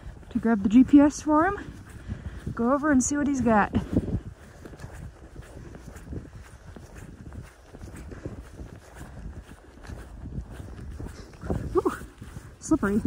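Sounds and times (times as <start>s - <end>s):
footsteps on wet mud: 0.0s - 13.0s.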